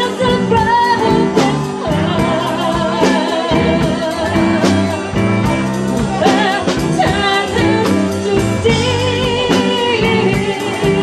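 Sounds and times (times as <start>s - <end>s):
live band playing: 0.0s - 11.0s
woman singing a soul ballad: 0.0s - 11.0s.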